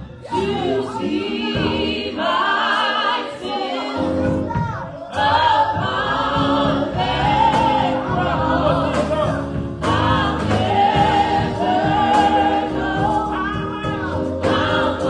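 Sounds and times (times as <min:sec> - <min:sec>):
gospel group singing: 0:00.0 - 0:15.0.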